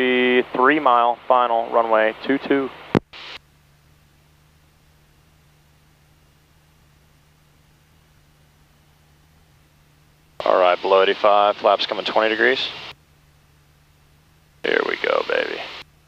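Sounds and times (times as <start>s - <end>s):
man speaking: 0.0s - 2.7s, 10.4s - 12.8s, 14.6s - 15.8s
aircraft engine hum through headset: 0.0s - 16.0s.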